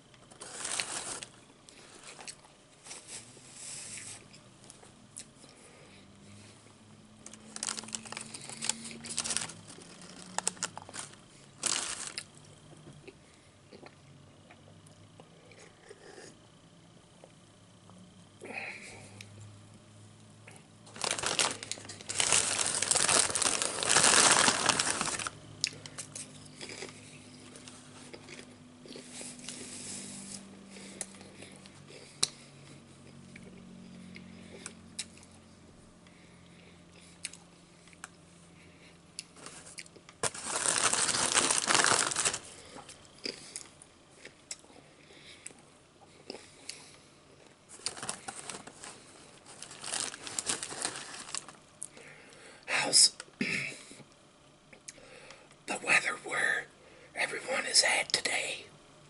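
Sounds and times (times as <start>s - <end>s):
crinkling snack bag and wrapper: 0.2s - 3.1s, 7.2s - 12.5s, 20.9s - 29.7s, 39.4s - 43.7s, 47.7s - 52.0s.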